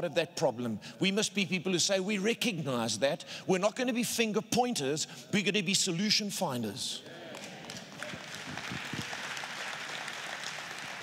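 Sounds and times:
audience applauding: 0:07.3 - 0:11.0.

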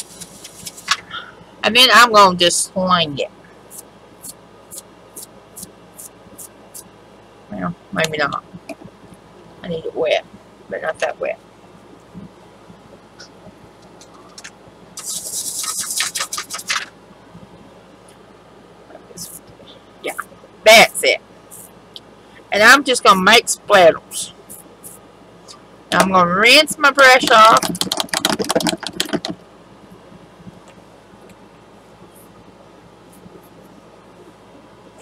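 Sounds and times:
toothbrush bristles flicking: 0:15.0 - 0:16.8.

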